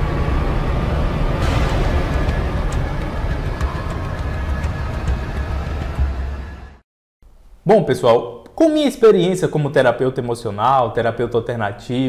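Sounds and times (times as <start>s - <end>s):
deep rumble: 0.0s - 6.8s.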